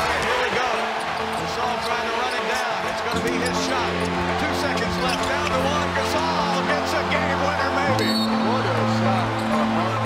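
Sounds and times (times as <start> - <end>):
loud arena crowd: 0.0 - 10.0
music playing: 0.0 - 10.0.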